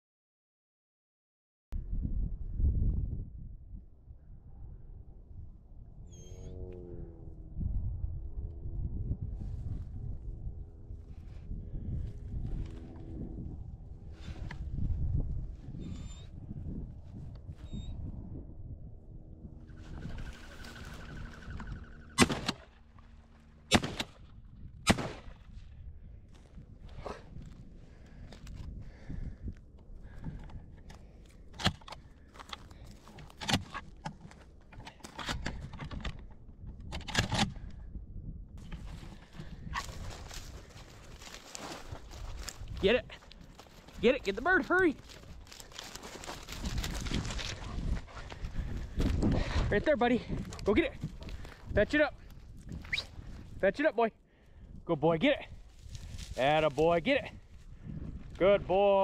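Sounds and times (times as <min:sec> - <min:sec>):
wind rumble on microphone: 0:01.7 - 0:59.0
footsteps in dry grass: 0:19.8 - 0:21.6, 0:26.2 - 0:29.2, 0:38.6 - 0:53.6, 0:55.5 - 0:58.4
shotgun firing: 0:22.2 - 0:22.7, 0:23.7 - 0:24.2, 0:24.9 - 0:25.4.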